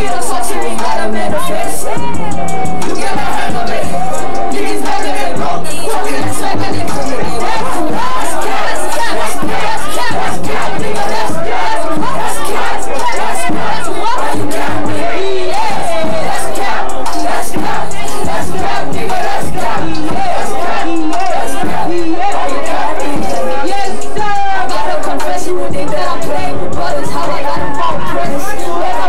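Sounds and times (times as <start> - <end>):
crowd shouting and yelling: 0.0 - 29.0
hip-hop music: 0.0 - 29.0.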